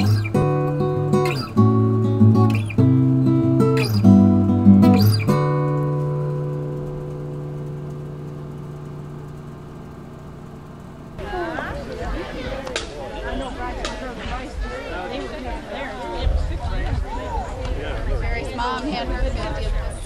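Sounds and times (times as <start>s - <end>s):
acoustic guitar strummed chords: 0.0s - 12.5s.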